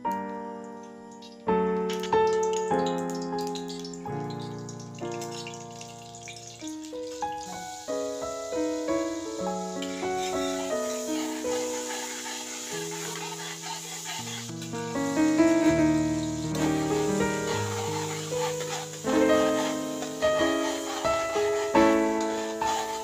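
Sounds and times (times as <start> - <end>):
margarine sizzling in hot oil: 1.1 - 23.0
keyboard music: 14.5 - 23.0.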